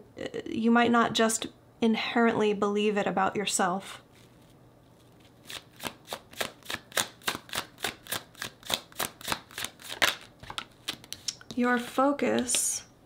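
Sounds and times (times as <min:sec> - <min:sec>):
cards being shuffled: 0:04.1 - 0:12.6.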